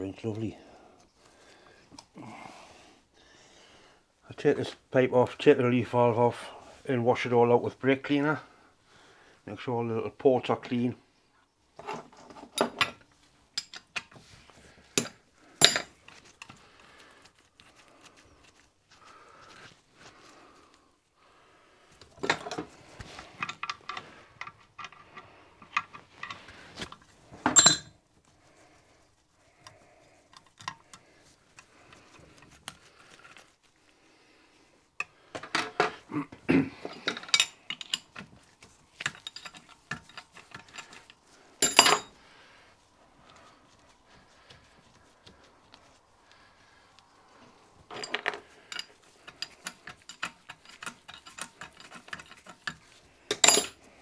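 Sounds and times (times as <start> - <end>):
metal tools clinking on a workbench: 11.8 - 14.1, 15.0 - 16.5, 22.2 - 22.7, 27.4 - 28.0, 36.8 - 38.3, 39.0 - 42.2, 47.9 - 53.8.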